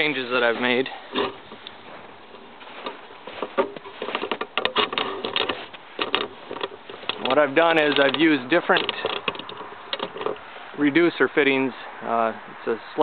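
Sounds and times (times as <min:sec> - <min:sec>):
footsteps crunching on snow: 0:00.0 - 0:04.4.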